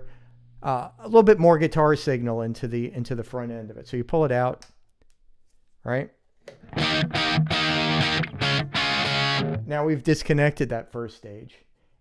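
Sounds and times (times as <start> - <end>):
distorted electric guitar chords: 6.6 - 9.8.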